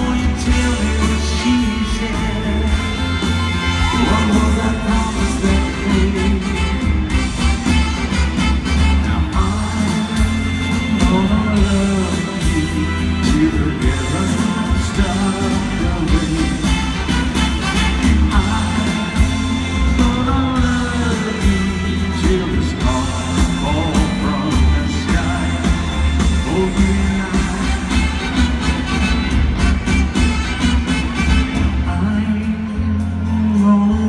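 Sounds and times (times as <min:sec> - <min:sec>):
live rock band playing: 0:00.0 - 0:34.0.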